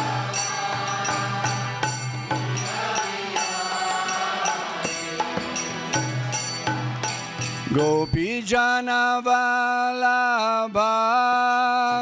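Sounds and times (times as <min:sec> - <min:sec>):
small hand cymbals ringing: 0:00.0 - 0:08.4.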